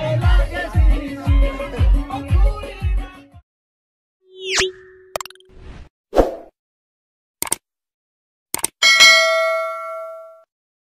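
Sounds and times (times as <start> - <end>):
bright bell ding: 8.8 - 10.5.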